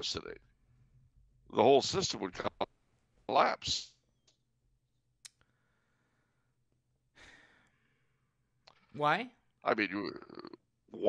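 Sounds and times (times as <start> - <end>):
speech: 0.0 - 0.4, 1.5 - 2.7, 3.3 - 4.0, 9.0 - 11.0
man breathing out: 7.2 - 8.1.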